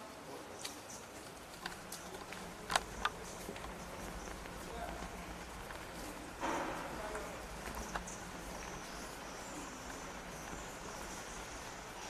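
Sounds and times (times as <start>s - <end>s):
murmured voices: 0.0s - 12.0s.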